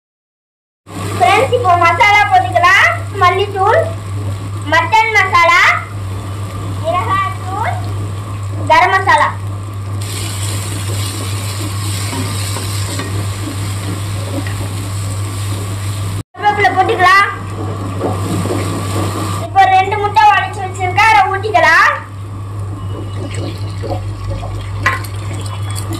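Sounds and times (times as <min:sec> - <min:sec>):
food sizzling in a pan: 0:00.9 - 0:16.2
spatula stirring in a pan: 0:10.0 - 0:16.2.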